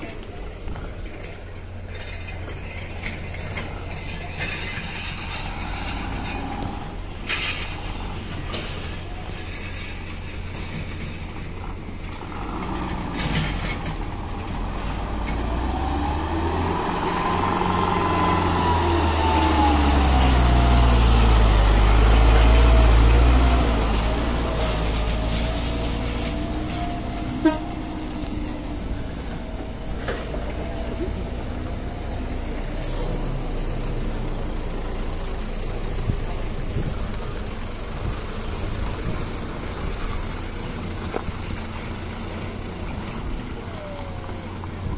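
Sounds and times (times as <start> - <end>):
diesel truck engine running hard: 0.0 - 44.9.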